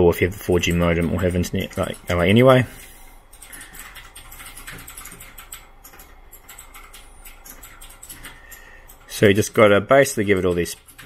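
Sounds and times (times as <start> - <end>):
low electrical hum: 0.0 - 11.0
rapid light clicks and taps: 0.5 - 2.5, 3.3 - 11.0.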